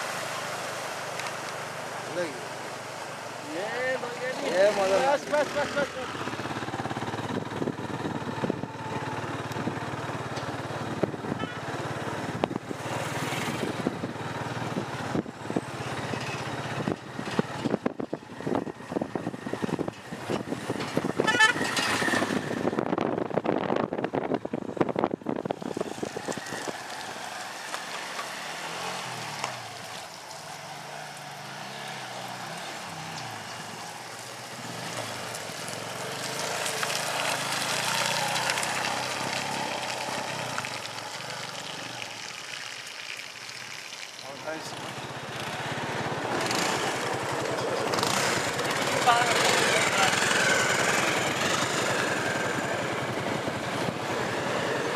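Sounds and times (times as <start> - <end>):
vehicles driving past on dirt road: 0.0 - 54.9.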